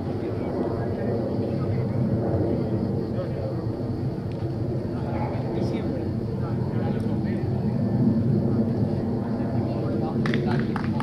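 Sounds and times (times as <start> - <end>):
faint voices: 0.0 - 11.0
low engine drone: 0.0 - 11.0.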